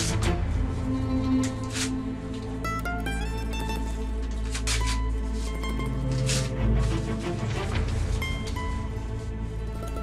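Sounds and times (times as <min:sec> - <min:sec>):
paper rustling: 0:04.2 - 0:09.5.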